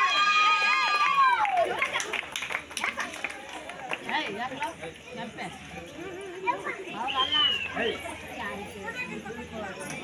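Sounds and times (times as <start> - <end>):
crowd chattering: 0.0 - 10.0.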